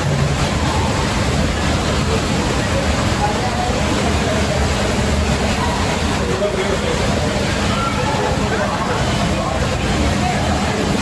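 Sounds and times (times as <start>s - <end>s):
flowing water rushing: 0.0s - 11.0s.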